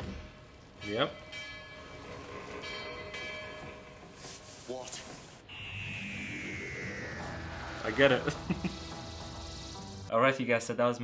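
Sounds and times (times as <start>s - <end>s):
bell-like ringing tones: 0.8s - 4.3s, 5.5s - 8.4s.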